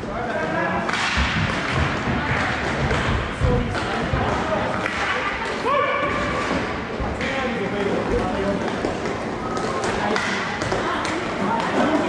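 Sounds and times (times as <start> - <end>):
players' voices: 0.0 - 12.0
hockey stick hitting puck: 0.9 - 5.2.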